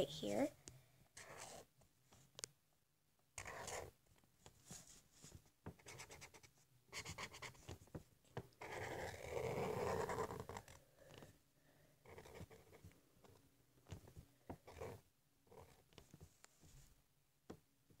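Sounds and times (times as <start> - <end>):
marker scratching on paper: 1.2 - 1.7, 3.4 - 8.0, 8.6 - 11.2, 12.0 - 16.2.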